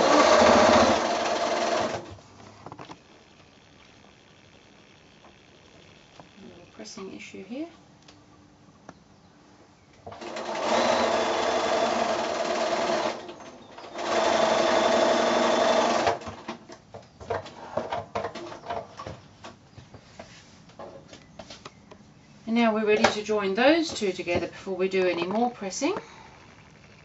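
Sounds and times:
sewing machine stitching: 0.0 - 2.1, 10.1 - 16.4.

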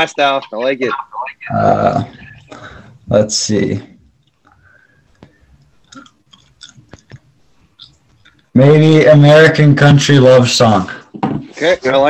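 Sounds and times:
faint clicks and light taps: 4.1 - 8.5.

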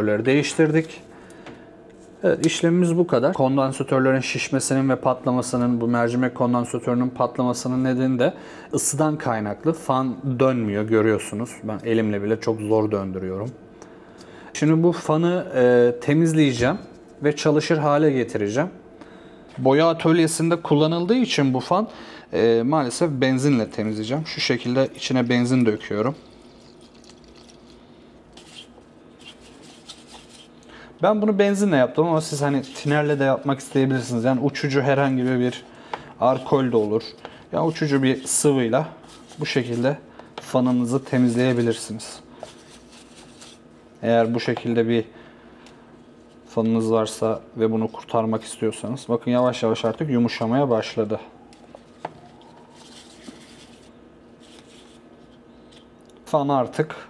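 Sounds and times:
petrol trickling into tub: 26.1 - 27.8
handling plastic fan: 28.3 - 30.6, 31.5 - 44.8, 51.5 - 56.0.

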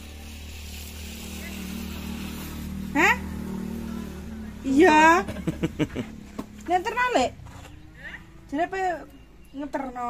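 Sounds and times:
vehicle engine running: 0.0 - 9.2.

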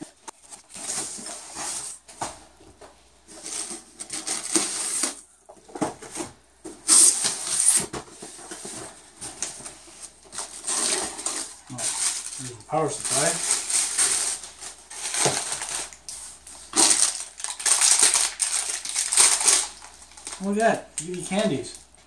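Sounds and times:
cardboard and plastic packaging rustling: 0.0 - 22.0.

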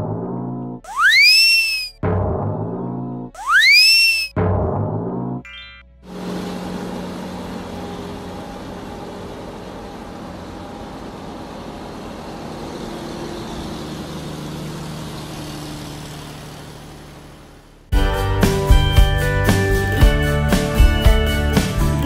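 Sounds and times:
truck engine running: 6.1 - 22.0.

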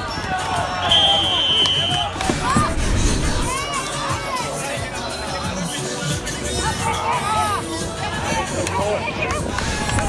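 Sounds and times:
voices of players and spectators: 0.0 - 10.0
referee's whistle blast: 0.8 - 2.2.

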